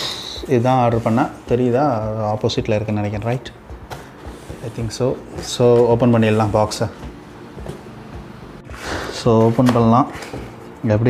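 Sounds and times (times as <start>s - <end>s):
short breath drawn: 8.7s - 9.2s.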